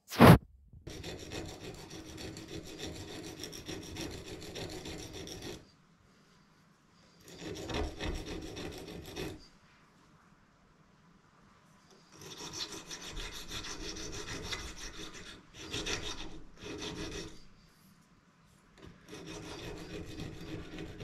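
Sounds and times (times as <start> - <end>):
sharp knock: 0.0 - 0.4
steel rod scraping on sandpaper: 0.0 - 5.6, 7.2 - 9.5, 12.1 - 17.5, 18.9 - 21.0.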